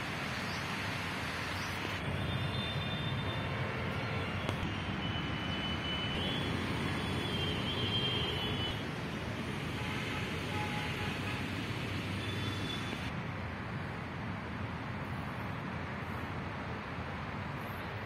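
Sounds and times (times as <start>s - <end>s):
distant city traffic: 0.0s - 18.0s.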